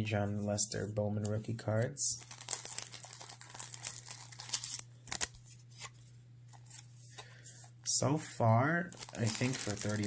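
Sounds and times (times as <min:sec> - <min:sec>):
plastic sleeves crinkling: 0:01.2 - 0:07.3, 0:08.8 - 0:10.0.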